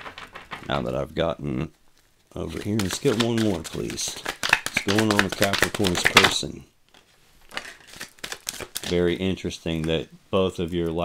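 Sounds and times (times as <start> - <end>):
cards being shuffled: 0.0 - 1.0, 1.9 - 10.0
man talking: 0.6 - 6.7, 8.8 - 11.0.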